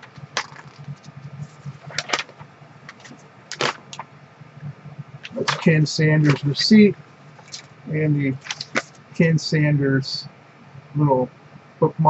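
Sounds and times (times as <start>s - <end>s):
paper crackling: 0.0s - 4.1s, 5.2s - 9.2s.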